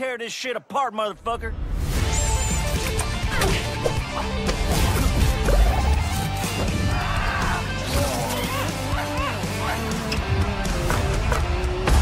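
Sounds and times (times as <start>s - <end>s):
trailer music: 1.1s - 12.0s
animal yelping: 8.2s - 10.1s.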